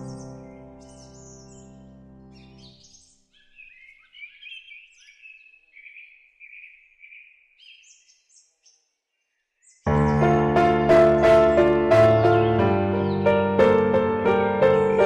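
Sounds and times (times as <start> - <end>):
sustained piano chord: 0.0 - 2.7, 9.9 - 15.0
loud piano music: 0.0 - 2.8, 9.9 - 15.0
birds chirping and singing: 0.0 - 10.4, 11.1 - 15.0.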